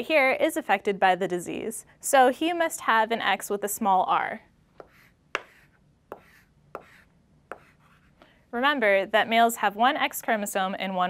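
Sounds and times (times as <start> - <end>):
chalk tapping on blackboard: 4.8 - 8.2
chalk scratching: 4.8 - 8.3.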